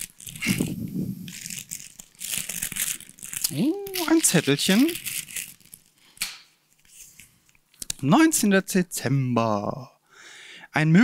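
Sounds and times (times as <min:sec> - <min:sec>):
paper rustling and crinkling: 0:00.0 - 0:06.2.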